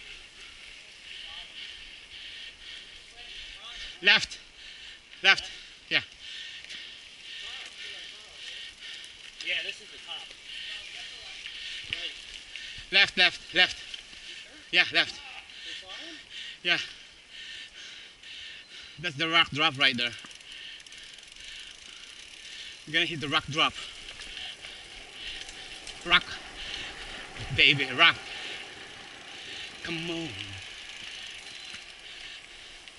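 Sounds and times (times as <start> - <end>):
mountain bikes rolling on dirt: 0.0 - 32.9
rider shouting: 29.8 - 30.7.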